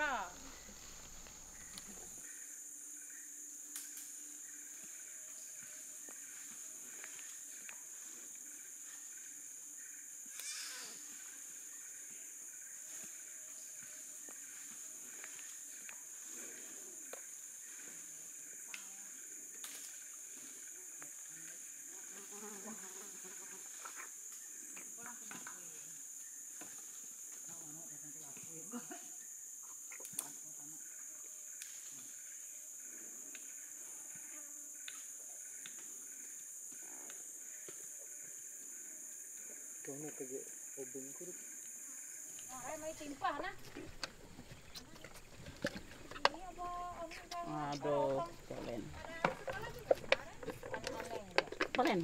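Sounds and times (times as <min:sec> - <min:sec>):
insects chorus: 0:00.0 - 0:52.0.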